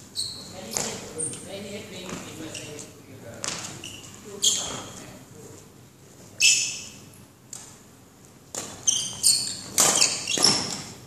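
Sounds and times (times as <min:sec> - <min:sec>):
shoes squeaking on hall floor: 0:00.0 - 0:11.0.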